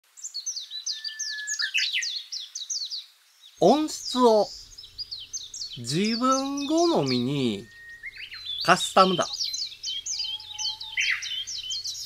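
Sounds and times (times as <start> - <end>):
bird chirping: 0.1 - 12.0
bird whistle: 0.9 - 2.2, 4.4 - 12.0.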